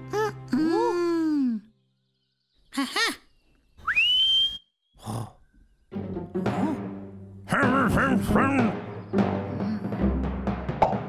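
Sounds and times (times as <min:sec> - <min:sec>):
rising slide whistle: 0:03.8 - 0:04.7.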